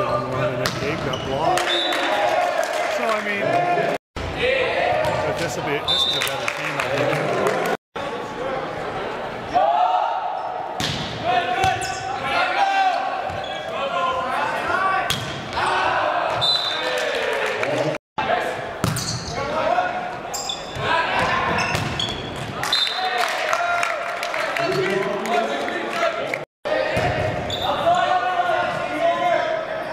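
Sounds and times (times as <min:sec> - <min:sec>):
volleyball slaps: 0:10.8 - 0:11.9
players shouting: 0:11.2 - 0:18.0.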